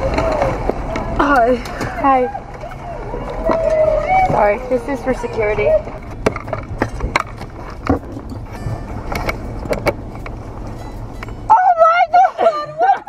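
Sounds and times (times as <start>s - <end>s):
car engine rumble: 0.0s - 13.0s
knocks and clicks in a car: 6.0s - 11.4s
high-pitched excited voice: 11.5s - 13.0s.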